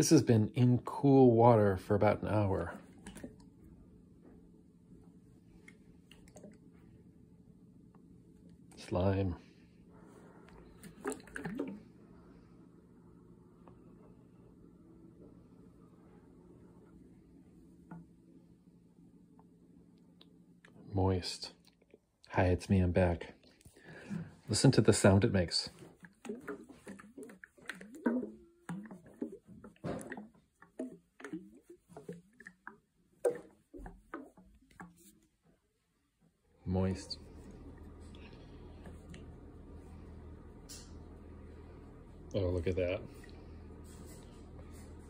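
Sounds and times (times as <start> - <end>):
slimy liquid squelching in jar: 2.2 - 3.7, 10.6 - 11.9, 25.5 - 35.4.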